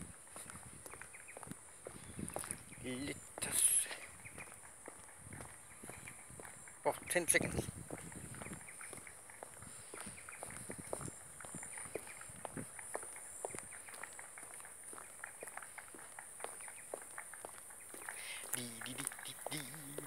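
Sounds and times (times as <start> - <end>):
footsteps on a boardwalk: 0.0 - 20.0.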